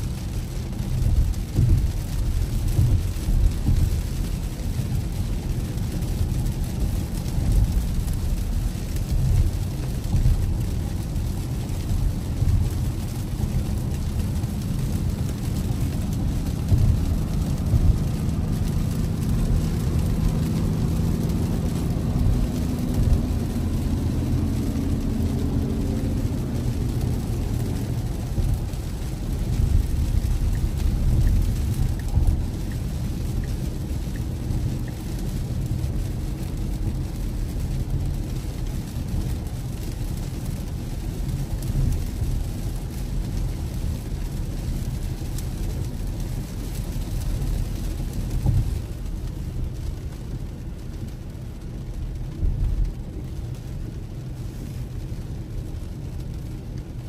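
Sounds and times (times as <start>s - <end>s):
rain on a car: 0.0s - 57.0s
road rumble and wet tyre noise: 0.0s - 57.0s.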